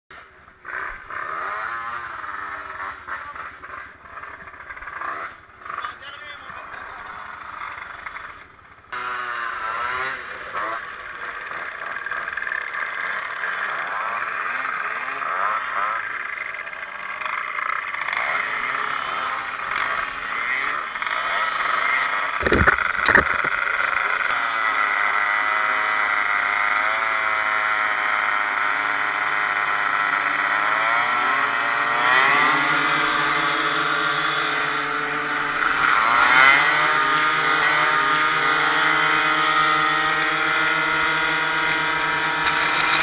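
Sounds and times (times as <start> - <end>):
scooter engines revving: 0.1 - 43.0.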